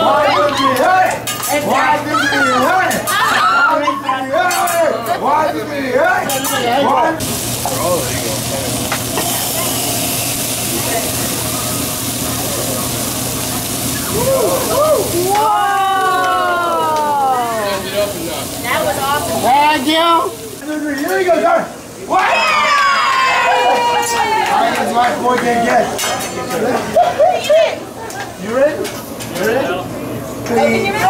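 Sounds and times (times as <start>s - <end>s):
voices: 0.0s - 31.0s
food sizzling on a griddle: 0.1s - 29.8s
people laughing: 3.4s - 4.5s, 11.0s - 18.2s, 26.6s - 28.4s
loud hiss: 7.2s - 21.0s
falling exclamation: 13.9s - 17.9s.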